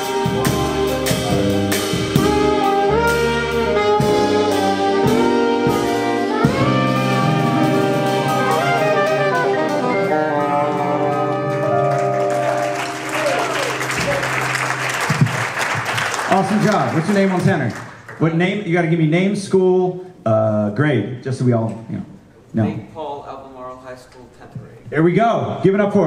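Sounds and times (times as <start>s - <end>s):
jazz combo playing: 0.0s - 19.1s
audience applause: 11.1s - 18.2s.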